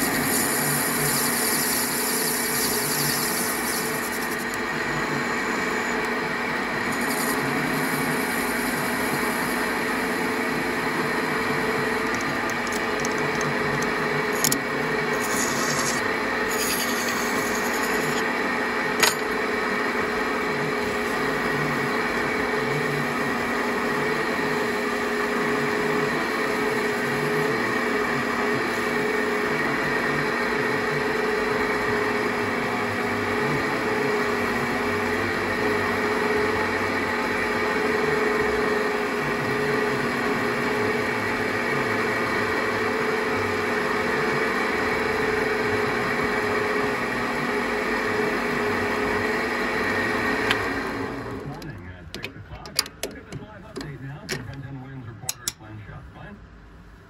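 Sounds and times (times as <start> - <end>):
abrasive paper on spinning tube: 0.0 - 4.6, 6.9 - 9.8, 15.1 - 18.2
metal lathe humming: 0.0 - 51.6.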